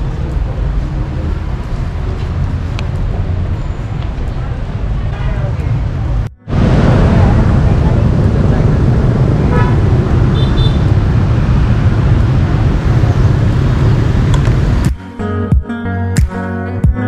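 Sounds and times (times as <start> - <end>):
loud low rumble: 0.0 - 14.9
street traffic noise: 0.0 - 15.1
plucked guitar music: 14.4 - 17.0.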